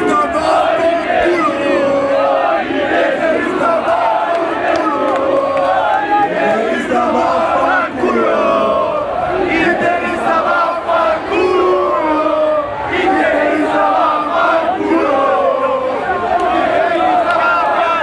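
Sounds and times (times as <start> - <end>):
crowd chanting and shouting: 0.0 - 18.0.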